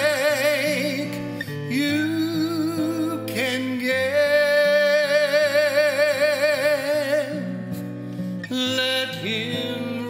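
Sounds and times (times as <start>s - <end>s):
acoustic guitar: 0.0s - 10.0s
man singing a slow ballad: 0.0s - 10.0s.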